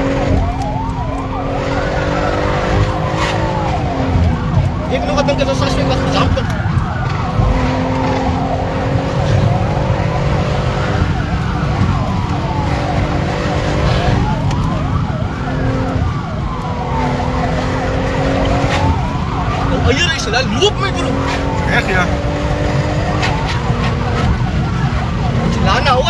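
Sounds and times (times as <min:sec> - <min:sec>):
car engine and road noise: 0:00.0 - 0:26.0
police siren wailing: 0:00.0 - 0:26.0.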